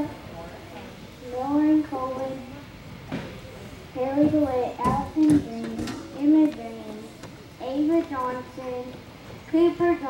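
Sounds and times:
girl speaking into a microphone: 1.2 - 2.7, 4.0 - 10.0.

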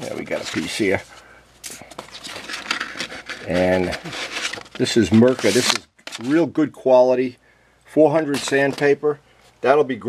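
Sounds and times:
sandpaper sheets rustling: 2.1 - 6.4.

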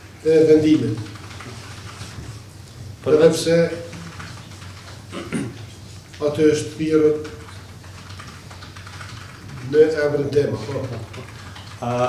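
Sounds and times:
man talking: 0.2 - 1.1, 3.0 - 4.0, 6.2 - 7.4, 9.6 - 11.2
keyboard typing: 0.7 - 2.2, 3.1 - 12.0.

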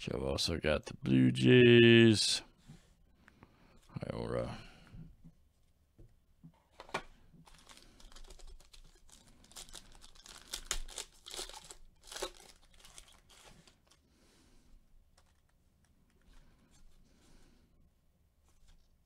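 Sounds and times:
foil wrapper tearing and crinkling: 7.4 - 14.0.

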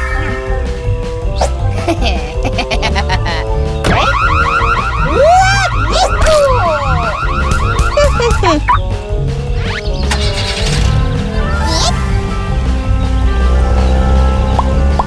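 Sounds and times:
background music: 0.0 - 15.0
swooping pitch glides: 3.8 - 8.9
warbling car alarm: 3.8 - 8.9.

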